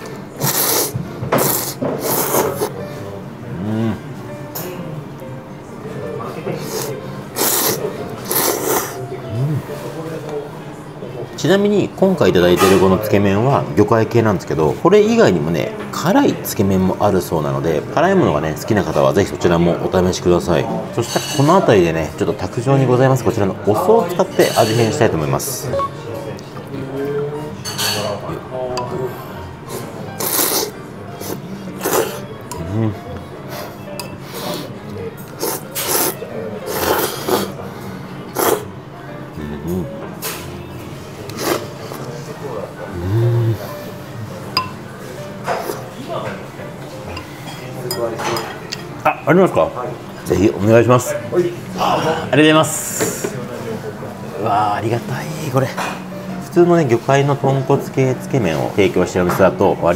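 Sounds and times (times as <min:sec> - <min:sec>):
person slurping noodles: 0:00.4 - 0:02.7, 0:06.6 - 0:09.8, 0:29.7 - 0:32.9, 0:35.4 - 0:37.5, 0:38.3 - 0:38.7, 0:41.4 - 0:41.9.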